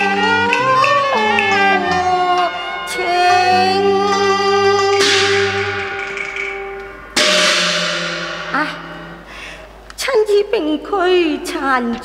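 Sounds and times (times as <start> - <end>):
held instrumental note: 0.0 - 9.8
cymbal and gong crash: 4.9 - 9.8.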